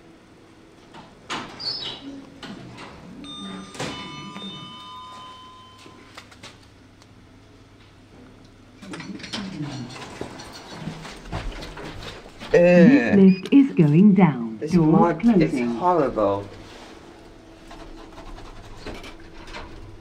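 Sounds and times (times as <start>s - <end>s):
two-note lift chime: 3.2s - 6.1s
lift doors clicking and rumbling: 17.6s - 20.0s.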